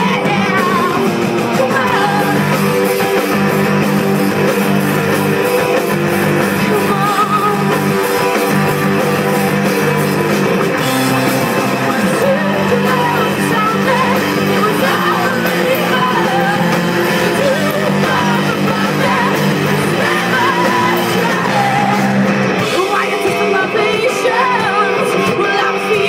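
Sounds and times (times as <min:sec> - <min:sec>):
lead vocal singing: 0:00.0 - 0:03.3, 0:06.4 - 0:10.0, 0:10.8 - 0:26.0
rock band playing live: 0:00.0 - 0:26.0.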